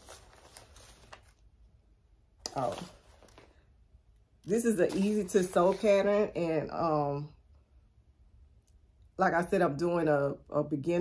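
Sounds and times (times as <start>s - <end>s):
paper rustling: 0.0s - 1.5s, 2.5s - 3.6s.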